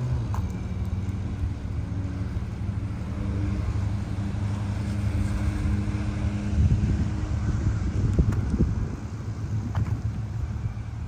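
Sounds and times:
vehicle engine idling: 0.0s - 11.0s
wind buffeting microphone: 5.2s - 11.0s.

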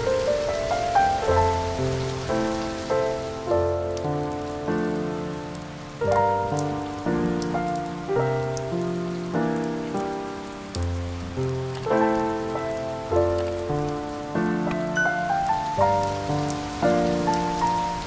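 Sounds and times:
soft instrumental music: 0.0s - 18.0s
steady rain: 0.0s - 18.0s.

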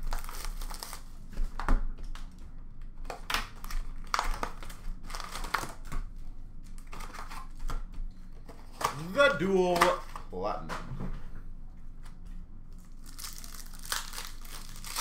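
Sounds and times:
packaging rustling and crinkling: 0.0s - 2.3s, 3.0s - 7.8s, 12.8s - 15.0s
faint steady hum: 0.0s - 15.0s.

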